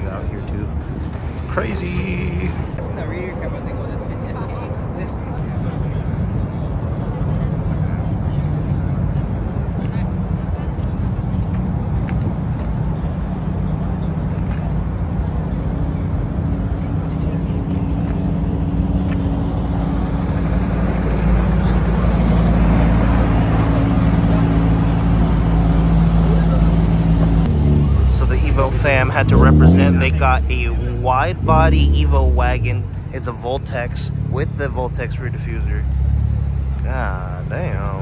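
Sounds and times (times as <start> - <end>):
car engine idling: 12.9 - 38.0.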